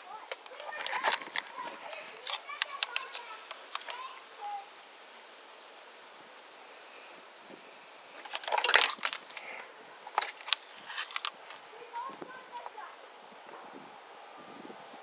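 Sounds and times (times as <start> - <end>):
sharp plastic clicks: 0.2 - 4.0
scuffing rustle: 10.3 - 14.4.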